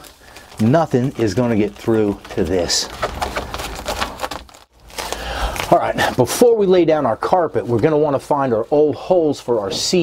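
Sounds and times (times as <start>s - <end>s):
foil insulation and tape crinkling: 0.0s - 10.0s.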